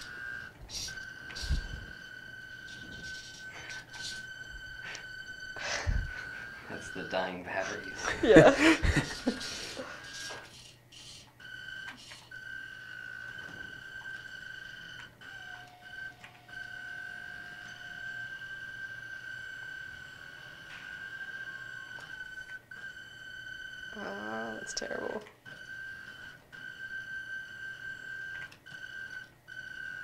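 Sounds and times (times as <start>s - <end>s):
high-pitched motor whine: 0.0s - 30.0s.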